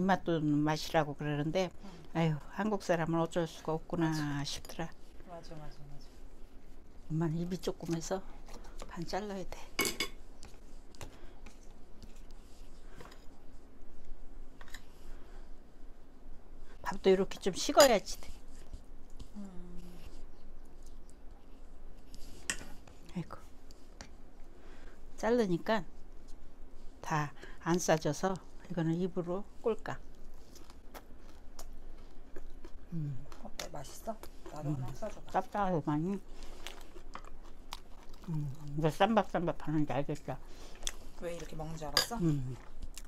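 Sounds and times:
person chewing food: 30.1 - 35.5, 36.2 - 38.9, 40.4 - 41.6, 42.2 - 43.0.

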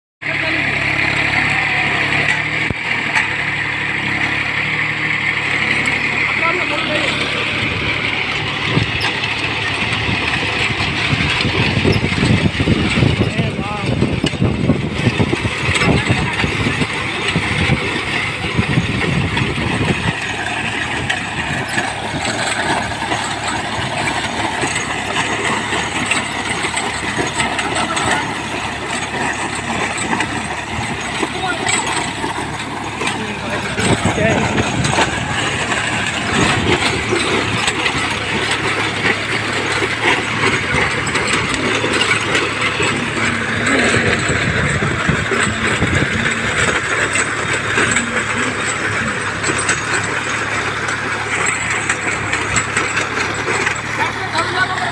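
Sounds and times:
tractor diesel engine under load: 0.2 - 54.9.

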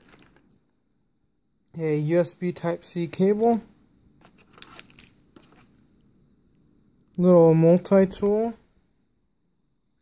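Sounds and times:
cable clicks and rustles: 4.2 - 5.7.

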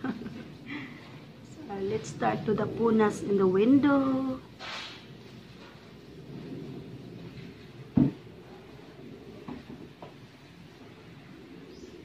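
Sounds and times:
low rustling of movement: 4.4 - 12.0.

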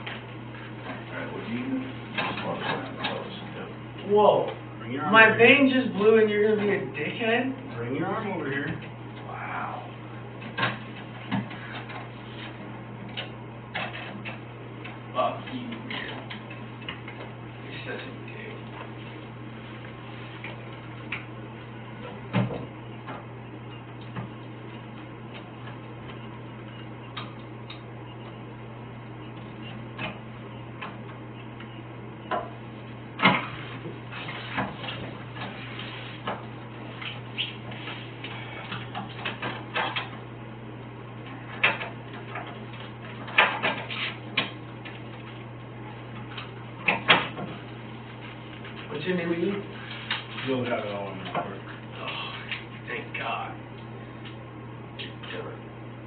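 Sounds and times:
low electrical hum: 0.0 - 56.0.

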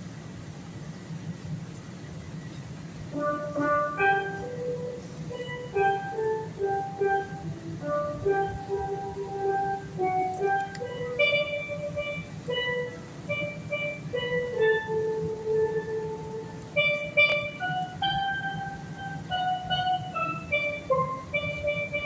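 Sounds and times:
steelpan slow melody: 3.1 - 22.0.

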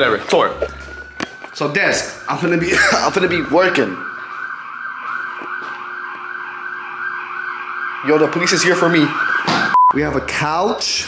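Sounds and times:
emergency vehicle siren: 0.0 - 10.3.

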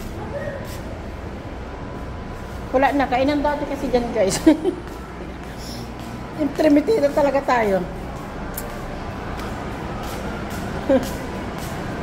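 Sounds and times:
buses rumbling: 0.0 - 12.0
footsteps on tiled floor: 2.0 - 12.0.

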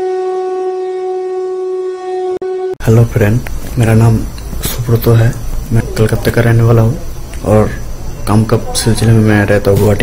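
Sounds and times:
long horn-like note: 0.0 - 3.0.

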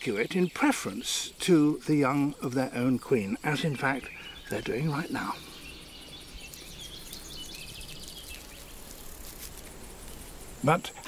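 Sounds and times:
insects chirping rapidly: 0.0 - 11.0.

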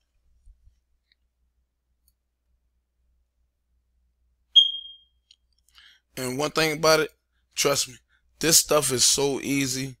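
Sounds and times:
high-pitched electronic beep: 4.6 - 5.2.

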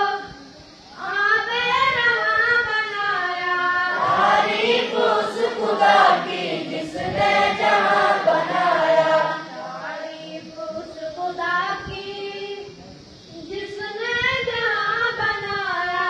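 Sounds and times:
boys chanting in unison: 3.3 - 11.4.

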